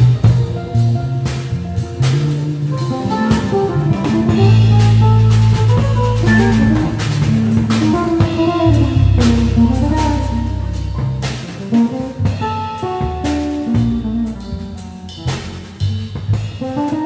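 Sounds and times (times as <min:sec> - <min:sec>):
drum kit with cymbals: 0:00.0 - 0:17.0
guitar melody: 0:00.0 - 0:17.0
sustained bass notes: 0:00.0 - 0:17.0.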